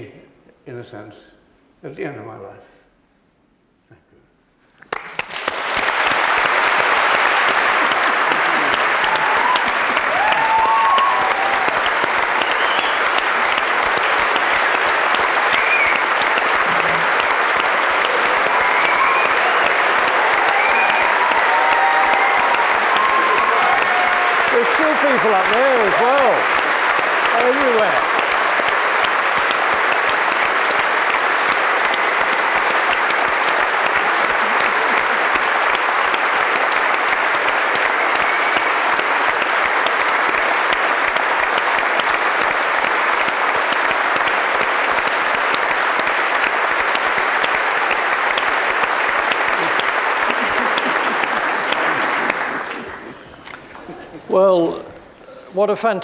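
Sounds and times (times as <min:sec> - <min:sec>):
audience applause: 0:04.9 - 0:54.5
voices rising over applause: 0:04.9 - 0:54.9.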